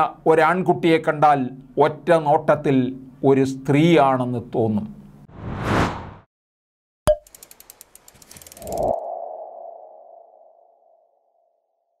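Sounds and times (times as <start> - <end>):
quick run of ticks: 7.2 - 9.0.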